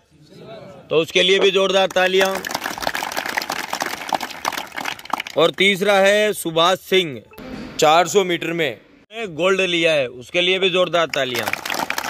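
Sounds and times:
crowd applauding: 1.8 - 5.8, 11.1 - 12.0.

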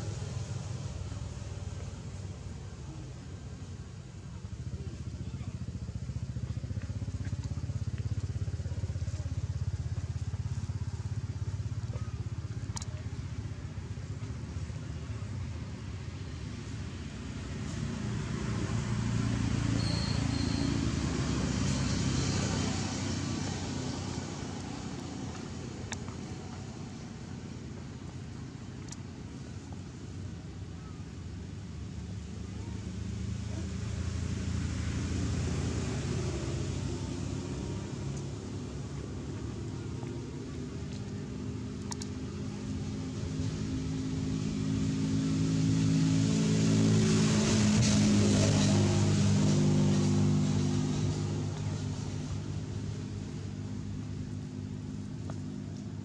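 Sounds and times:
low rumble of motor traffic: 0.0 - 56.0
vehicle passing: 17.2 - 27.3, 32.1 - 55.8.

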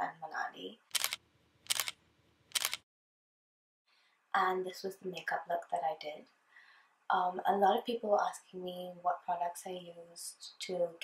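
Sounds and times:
camera shutter clicks: 0.9 - 2.8.

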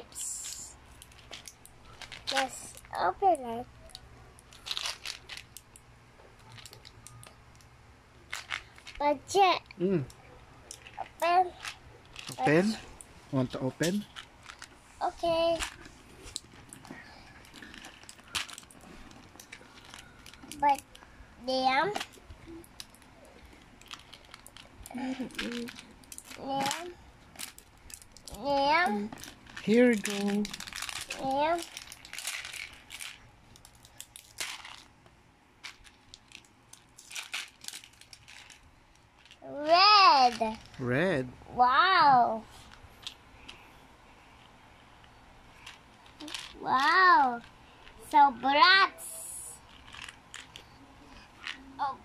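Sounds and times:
person calling out: 9.8 - 10.1.

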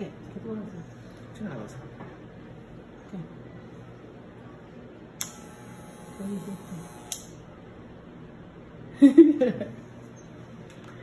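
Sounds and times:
hair clipper switch click: 5.2 - 5.6, 6.8 - 7.4
hair clipper humming: 5.2 - 7.5.

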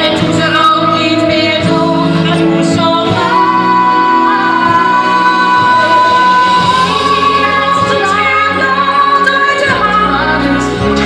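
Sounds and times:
women singing in harmony: 0.0 - 11.0
orchestral accompaniment: 0.1 - 11.0.

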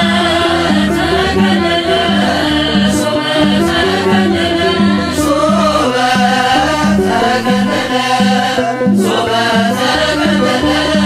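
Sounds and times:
instrumental accompaniment: 0.0 - 11.0
woman chanting a hymn: 0.0 - 11.0.

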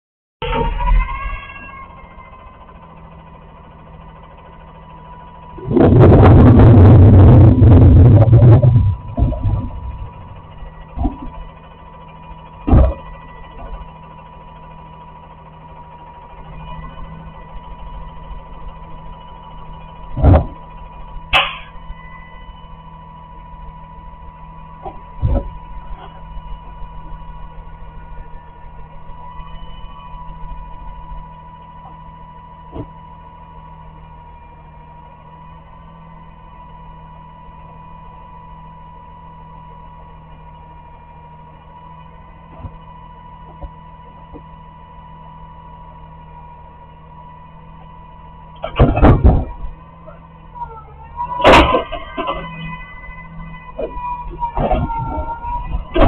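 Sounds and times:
diesel engine idling: 0.4 - 56.0
faint steady whine: 0.4 - 56.0.

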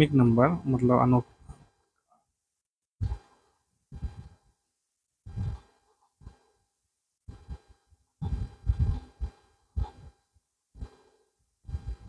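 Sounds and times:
person breathing puffs: 3.0 - 4.5, 5.2 - 6.6, 7.3 - 10.2, 10.8 - 12.0.

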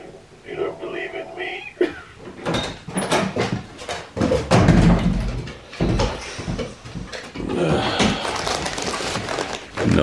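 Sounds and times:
paper bag rustling: 8.1 - 10.0.

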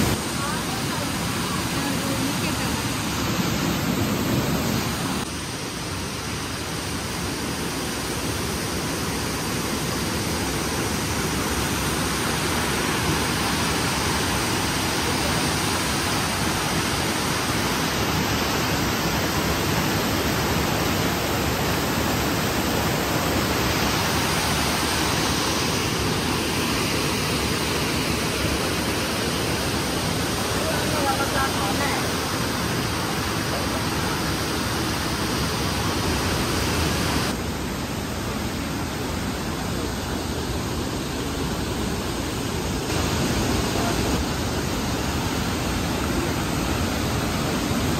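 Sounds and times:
fast river flowing: 0.0 - 47.9
waterfall rushing over rocks: 0.0 - 47.9.

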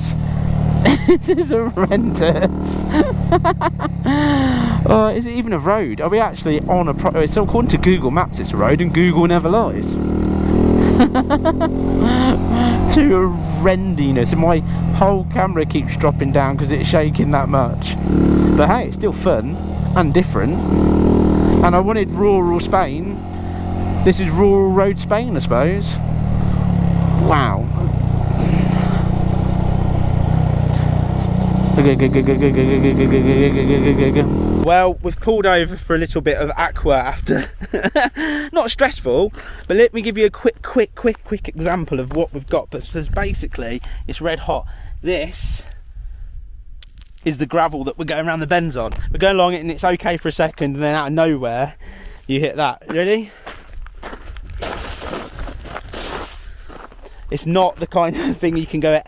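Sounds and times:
motorcycle engine running: 0.0 - 34.8
rumbling road noise: 0.0 - 59.0
stones clicking: 46.8 - 47.3
shoe scraping through gravel: 53.4 - 57.2.

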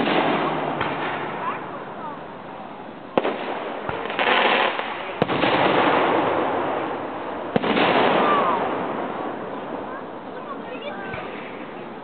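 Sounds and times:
firework shells bursting: 0.0 - 1.7, 3.1 - 9.5.

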